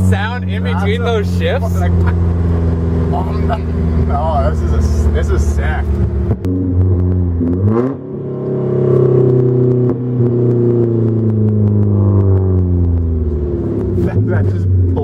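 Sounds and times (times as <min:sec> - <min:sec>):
car engine accelerating: 0:00.0 - 0:15.0.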